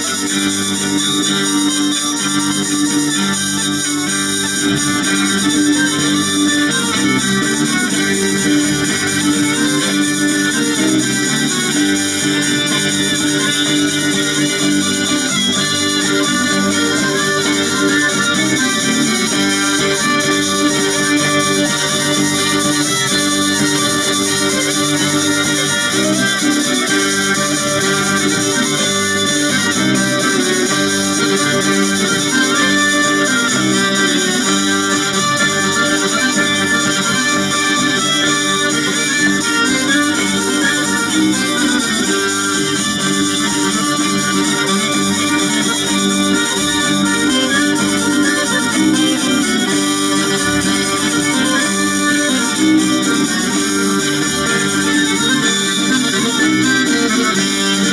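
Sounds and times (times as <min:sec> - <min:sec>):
acoustic guitar: 0:00.0 - 0:57.9
button accordion: 0:00.0 - 0:57.9
held drone: 0:00.0 - 0:57.9
hurdy-gurdy: 0:00.0 - 0:57.9
violin: 0:00.0 - 0:57.9.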